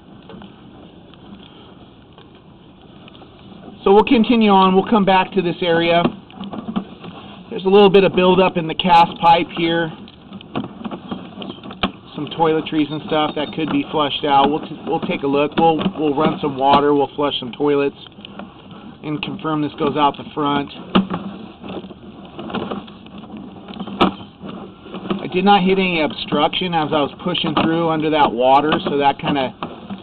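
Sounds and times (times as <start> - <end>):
cable clicking and rustling in pipe: 0.0 - 30.0.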